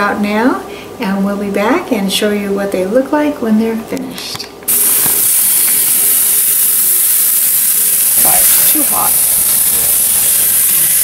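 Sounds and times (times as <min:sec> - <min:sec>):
meat sizzling on grill: 0:04.7 - 0:11.0.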